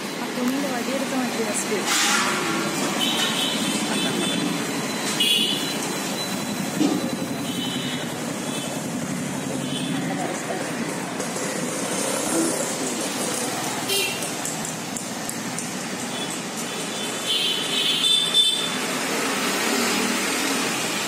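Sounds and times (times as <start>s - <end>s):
motorbikes and scooters passing: 0.0s - 21.0s.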